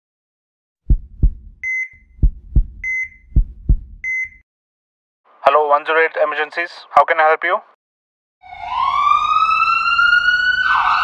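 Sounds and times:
heartbeat double thump: 0.8s - 4.4s.

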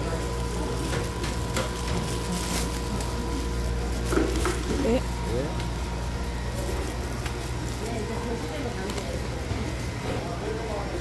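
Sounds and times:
low street market rumble: 0.0s - 11.0s.

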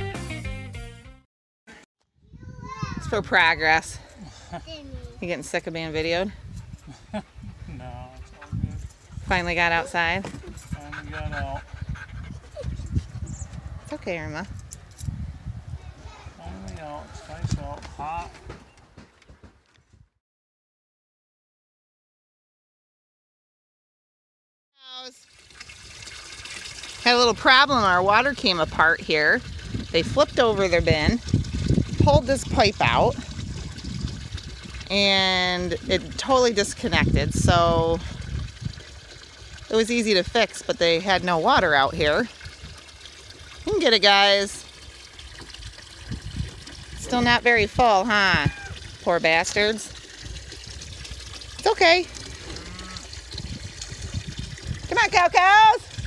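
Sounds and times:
water trickling into bin: 8.6s - 12.3s, 25.2s - 56.0s
faint low moo: 52.4s - 53.1s.

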